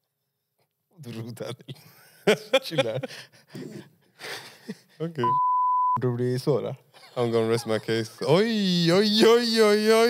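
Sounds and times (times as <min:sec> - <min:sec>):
man speaking: 0:05.0 - 0:05.4, 0:06.0 - 0:10.0
high-pitched censor bleep: 0:05.2 - 0:06.0.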